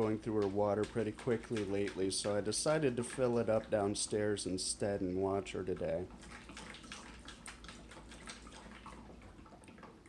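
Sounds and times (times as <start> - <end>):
cat splashing water in dish: 0.0 - 10.0.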